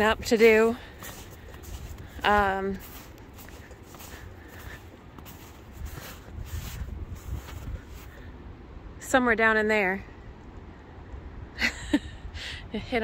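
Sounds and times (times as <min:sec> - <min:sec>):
footsteps in snow: 0:00.0 - 0:08.3
wind rumbling on microphone: 0:00.0 - 0:09.4.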